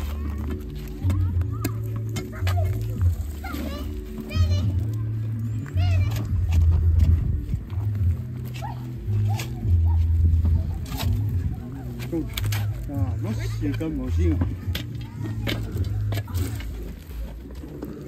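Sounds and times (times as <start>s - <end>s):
music with deep bass line: 0.0s - 18.0s
voices: 0.0s - 18.0s.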